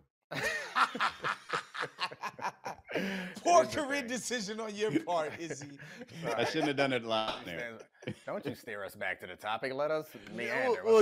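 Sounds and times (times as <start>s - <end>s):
men laughing: 0.3s - 3.7s, 4.7s - 8.6s.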